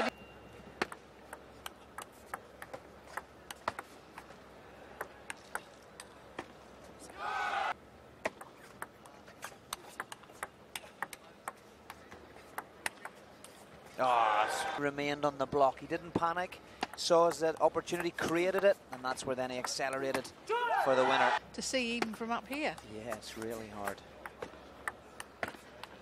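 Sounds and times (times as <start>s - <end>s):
person shouting: 20.5s - 21.4s.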